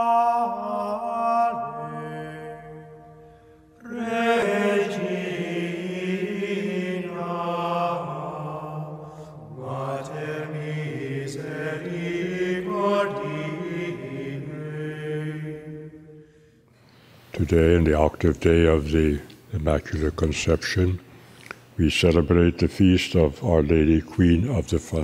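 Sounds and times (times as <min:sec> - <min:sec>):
chant with long held notes: 0:00.0 - 0:16.7.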